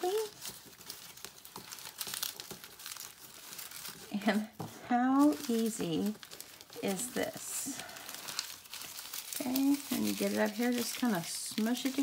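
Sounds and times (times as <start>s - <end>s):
tissue paper crinkling: 0.0s - 12.0s.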